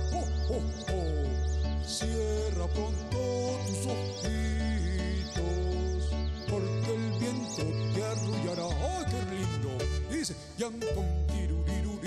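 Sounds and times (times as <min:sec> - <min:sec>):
electronic keyboard playing a carol: 0:00.0 - 0:12.0
man singing: 0:00.0 - 0:12.0.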